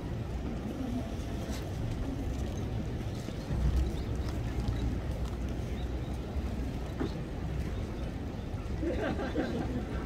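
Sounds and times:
faint distant voices: 0.0s - 10.0s
low crowd rumble: 0.0s - 10.0s.

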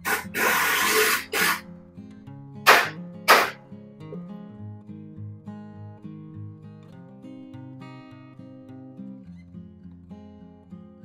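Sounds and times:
loud bursts of hissing noise: 0.0s - 1.6s, 2.7s - 3.6s
acoustic guitar music: 0.0s - 11.0s.

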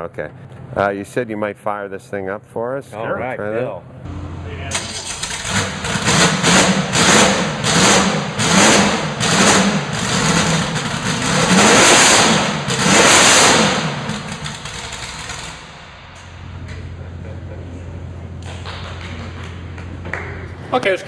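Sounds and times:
racing engine revving: 4.1s - 15.8s.

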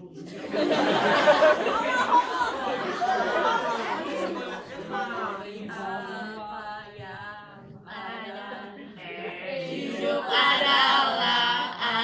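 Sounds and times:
murmur of chatter: 0.0s - 6.4s.

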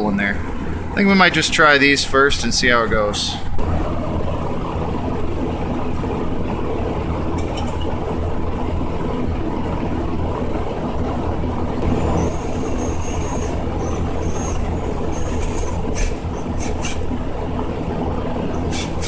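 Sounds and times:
low mechanical rumble: 0.0s - 19.0s.

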